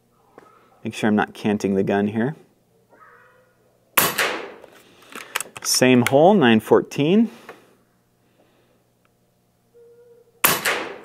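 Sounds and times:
air rifle shot: 0:04.0 - 0:04.6, 0:10.4 - 0:11.0.

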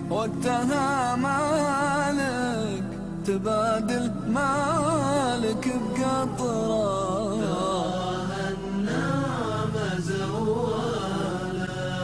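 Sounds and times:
low sustained vocal drone: 0:00.0 - 0:12.0
wordless chanted vocal melody: 0:00.0 - 0:12.0.

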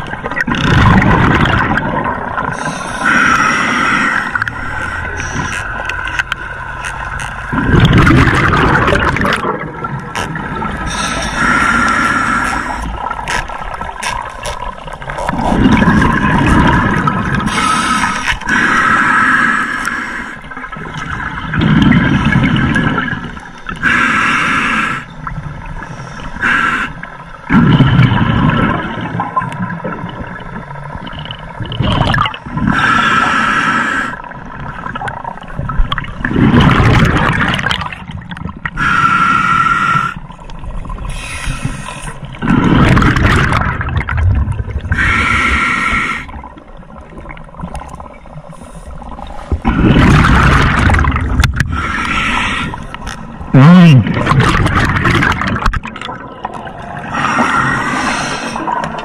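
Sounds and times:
bubbling exhalations: 0:00.0 - 0:03.2, 0:07.5 - 0:14.2, 0:15.2 - 0:18.7, 0:21.4 - 0:23.3, 0:27.5 - 0:30.4, 0:31.6 - 0:32.8, 0:35.9 - 0:38.9, 0:42.3 - 0:45.6, 0:49.6 - 0:52.8, 0:53.4 - 0:59.0
hissing regulator inhalations: 0:02.5 - 0:05.9, 0:10.8 - 0:13.0, 0:17.5 - 0:20.5, 0:41.1 - 0:42.3, 0:45.0 - 0:46.4, 0:51.6 - 0:53.2, 0:57.0 - 0:58.9.

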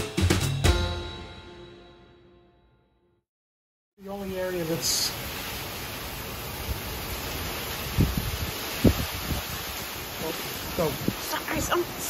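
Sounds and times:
heavy rain: 0:04.0 - 0:12.0
hurricane wind: 0:04.0 - 0:12.0.

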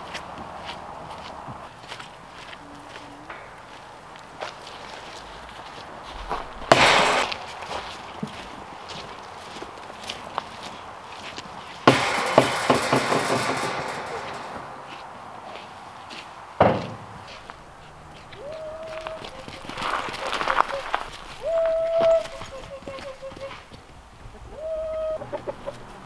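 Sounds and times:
footsteps: 0:00.0 - 0:24.0
loud rustling: 0:03.3 - 0:08.6, 0:11.7 - 0:15.2
small knocks: 0:11.8 - 0:15.1, 0:16.6 - 0:17.5.

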